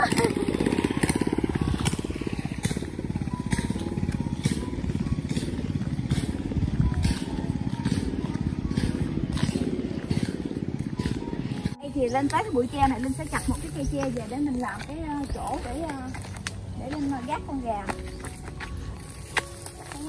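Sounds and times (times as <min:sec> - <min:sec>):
footsteps on a path: 0:00.0 - 0:20.0.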